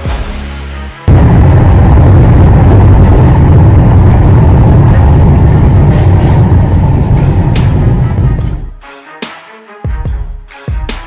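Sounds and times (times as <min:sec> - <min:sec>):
train wheels rumbling on rail: 0:03.2 - 0:08.7.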